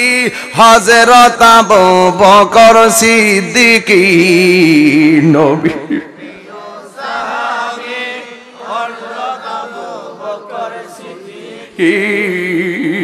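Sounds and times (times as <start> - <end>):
amplified lead voice: 0.0 - 13.0
congregation chanting: 6.2 - 12.6.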